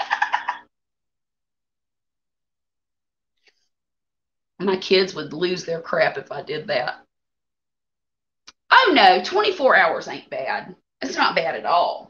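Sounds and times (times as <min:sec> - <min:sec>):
woman laughing: 0:00.0 - 0:00.6.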